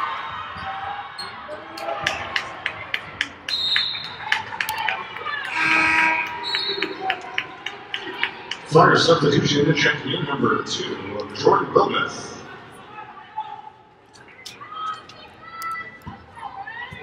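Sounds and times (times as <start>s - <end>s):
voices echoing in arena: 0.0s - 17.0s.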